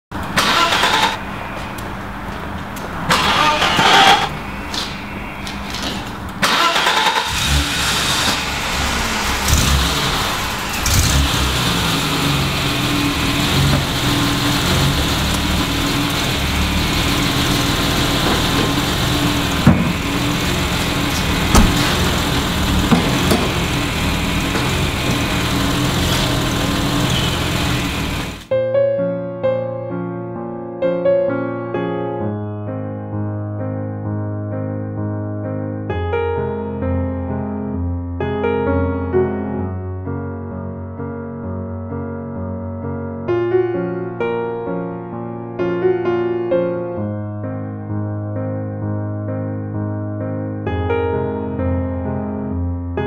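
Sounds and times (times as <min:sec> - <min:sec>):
car engine cranking: 0:00.2 - 0:01.3, 0:03.1 - 0:04.4, 0:05.8 - 0:28.5
car engine running: 0:05.7 - 0:28.5.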